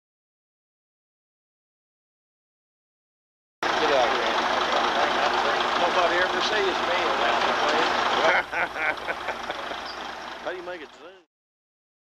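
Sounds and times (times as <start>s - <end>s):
heavy machinery running: 3.6s - 11.2s
people talking: 3.6s - 11.3s.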